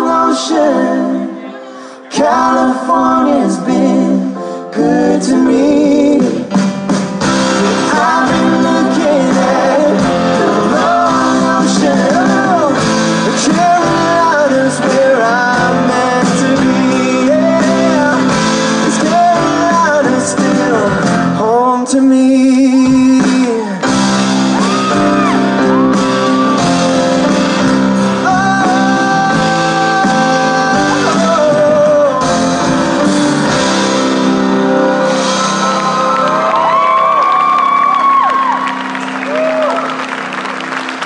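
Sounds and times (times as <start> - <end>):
person singing: 0.0 - 6.7, 7.3 - 34.3
live band playing: 0.0 - 41.0.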